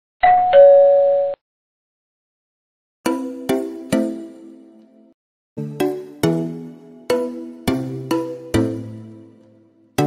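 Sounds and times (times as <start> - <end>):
two-note doorbell chime: 0.2 - 1.4.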